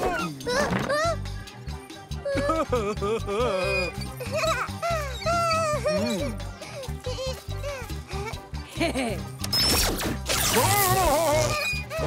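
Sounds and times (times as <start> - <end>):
cartoon ray-gun zap: 9.5 - 11.5.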